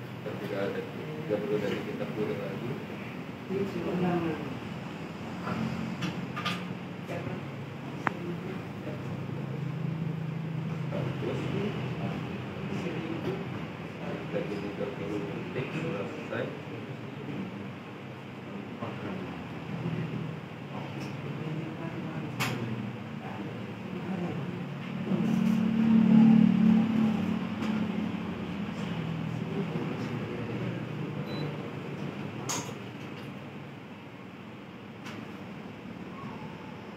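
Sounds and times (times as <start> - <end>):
low mechanical hum: 0.0 - 36.9.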